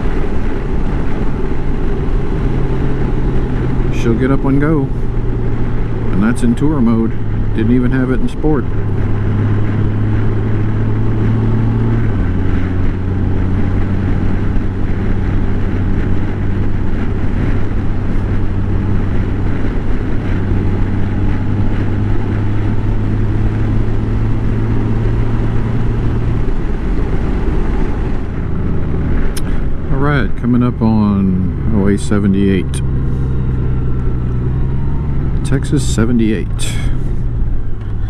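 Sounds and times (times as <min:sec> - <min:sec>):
motorcycle engine running: 0:00.0 - 0:38.0
wind rush: 0:00.0 - 0:38.0.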